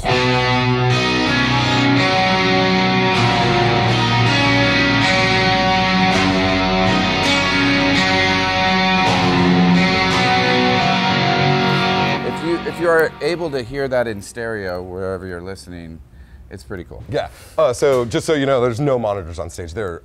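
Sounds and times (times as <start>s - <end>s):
electric guitar ringing chords: 0.0s - 14.1s
man speaking: 12.2s - 20.0s.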